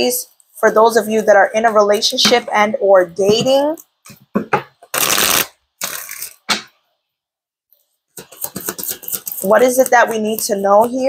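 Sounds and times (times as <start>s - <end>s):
cards being shuffled: 4.9s - 6.4s, 8.2s - 10.7s.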